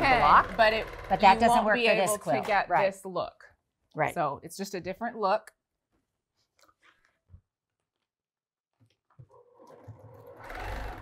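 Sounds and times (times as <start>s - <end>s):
electric sewing machine stitching: 0.0s - 2.8s, 9.5s - 11.0s.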